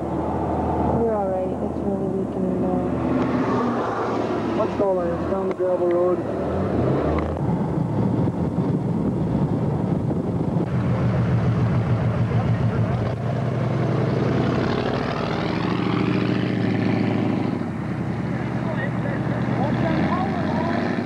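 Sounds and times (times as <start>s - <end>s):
tyres on gravel road: 0.0s - 21.0s
car engine running: 4.4s - 20.8s.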